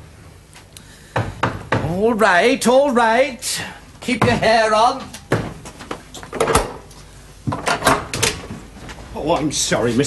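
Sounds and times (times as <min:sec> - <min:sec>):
knocks on wooden door: 0:04.2 - 0:04.6.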